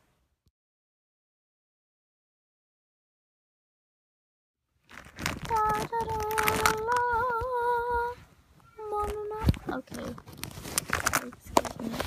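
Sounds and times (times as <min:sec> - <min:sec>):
plastic toy figures handled: 0:04.8 - 0:08.0, 0:08.8 - 0:12.0.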